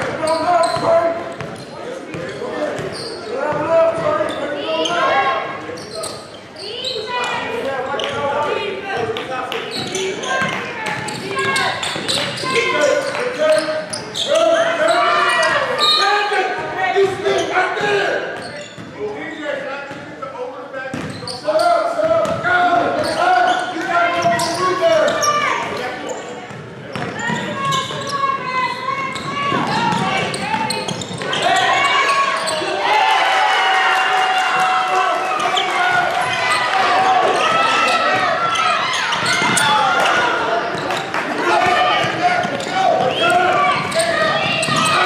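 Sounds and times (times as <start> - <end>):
people shouting: 27.6 - 40.7, 41.3 - 45.0.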